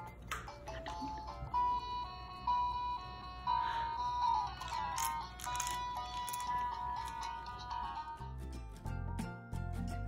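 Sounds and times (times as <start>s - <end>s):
toy beeping electronic melody: 0.0s - 8.3s.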